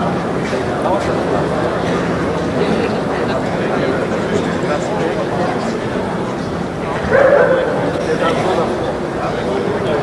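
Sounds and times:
dog barking: 7.1s - 7.8s.

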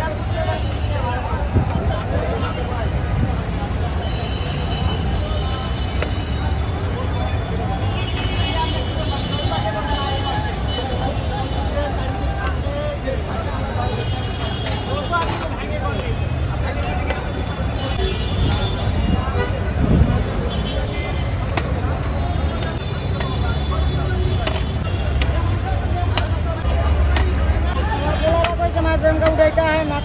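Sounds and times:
indistinct voices talking: 0.0s - 30.0s
low traffic rumble: 0.0s - 30.0s.

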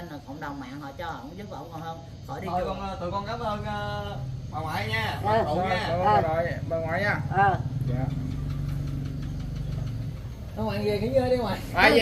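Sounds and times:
engine humming steadily: 2.1s - 12.0s.

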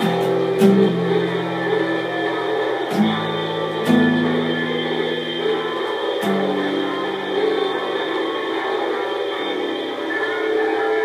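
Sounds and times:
acoustic guitar chords: 0.0s - 11.0s.

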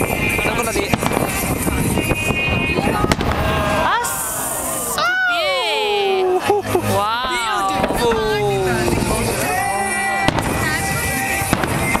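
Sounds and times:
fireworks shells bursting: 0.0s - 3.4s, 7.7s - 12.0s.

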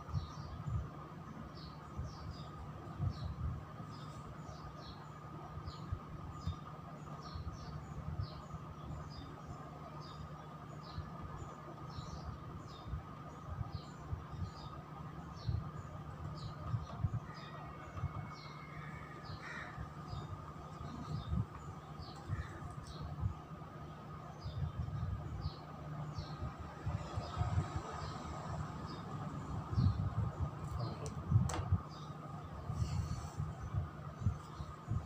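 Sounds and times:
steady room hum: 0.0s - 35.0s.

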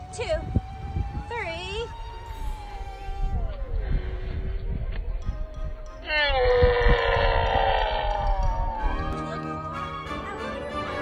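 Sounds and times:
background music: 8.3s - 11.0s.

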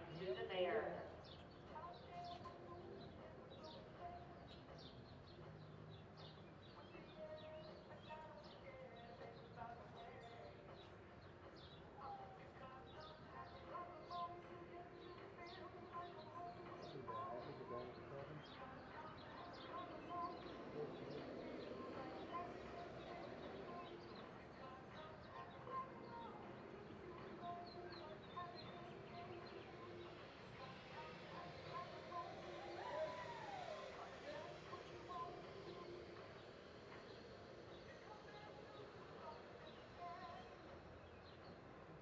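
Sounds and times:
murmur of distant voices: 0.0s - 42.0s
small birds chirping: 0.0s - 42.0s.

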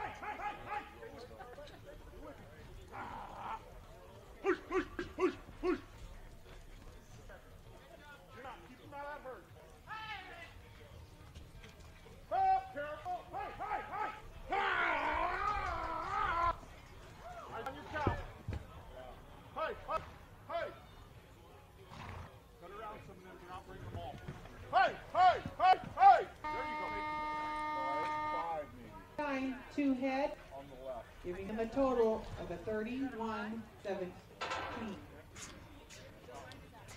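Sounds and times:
people shouting and calling: 0.0s - 6.1s, 12.2s - 18.2s, 24.7s - 29.5s
timer horn steady tone: 26.4s - 28.8s.

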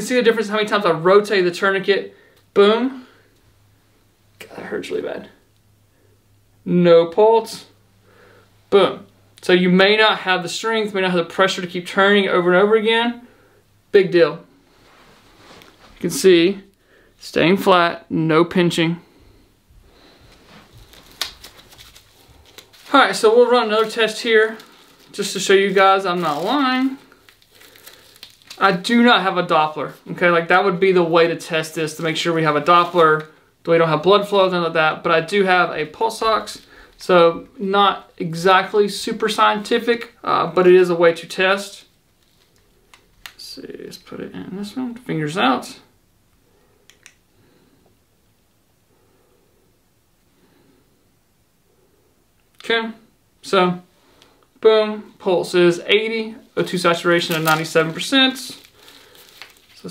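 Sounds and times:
strap scratching and rustling: 20.2s - 28.9s, 31.9s - 33.3s, 42.1s - 43.4s, 56.3s - 59.9s.

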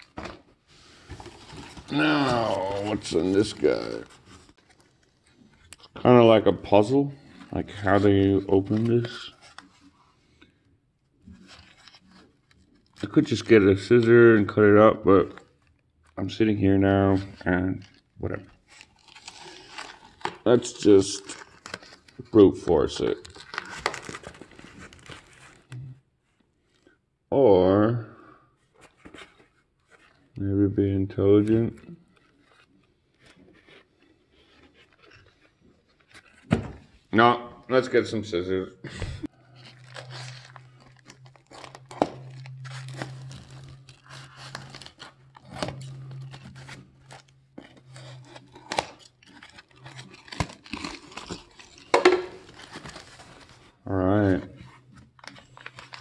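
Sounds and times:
plastic wrapping crinkling and tearing: 0.0s - 0.4s, 1.2s - 10.1s, 11.2s - 25.8s, 31.4s - 36.5s, 39.2s - 56.0s.

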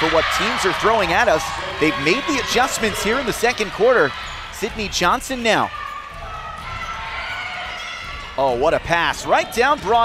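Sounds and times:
basketball court and crowd noise: 0.0s - 10.0s.

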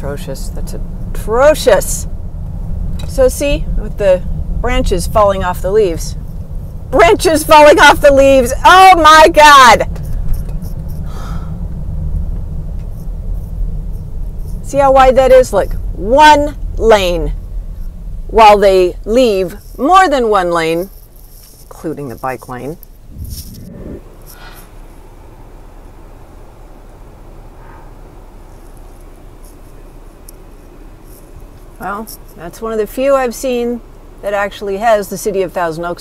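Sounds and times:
car driving rumble: 0.0s - 36.0s
vehicle engines idling: 0.0s - 36.0s.

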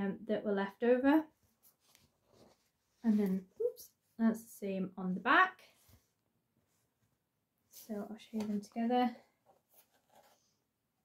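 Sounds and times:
person speaking: 3.0s - 5.6s.

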